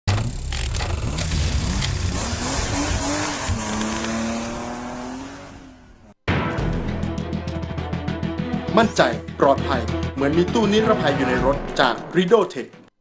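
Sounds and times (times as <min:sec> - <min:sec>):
race car engine and tyre noise: 0:00.1 - 0:06.2.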